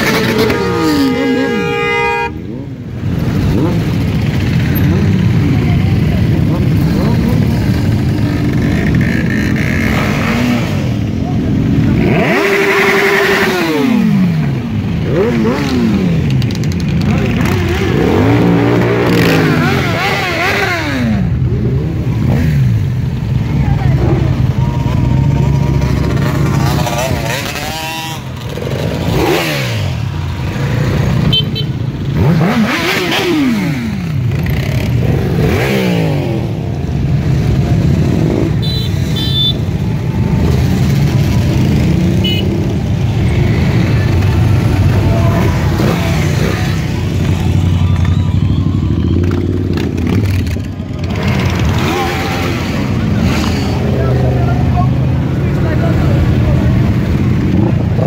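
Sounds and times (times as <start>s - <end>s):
motorcycles riding past: 0.0s - 58.0s.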